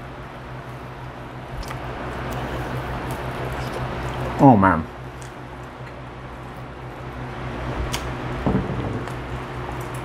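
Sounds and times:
low hum: 0:00.0 - 0:10.0.

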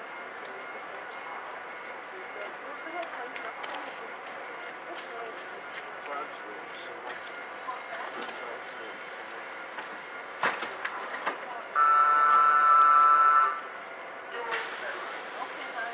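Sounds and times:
train door warning tone: 0:11.7 - 0:13.8.

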